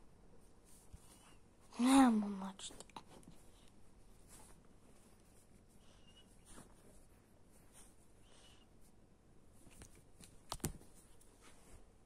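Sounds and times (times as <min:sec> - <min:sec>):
bedding rustling: 0:00.4 - 0:08.2, 0:09.5 - 0:12.0.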